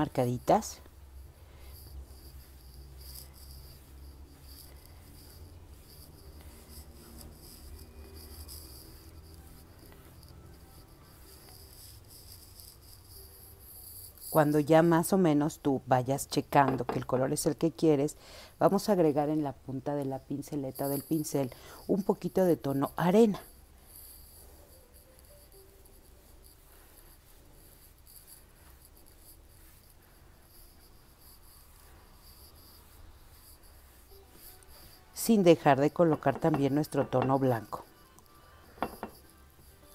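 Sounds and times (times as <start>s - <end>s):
brush scratching on paint: 0.0s - 39.9s
low room hum: 0.0s - 39.9s.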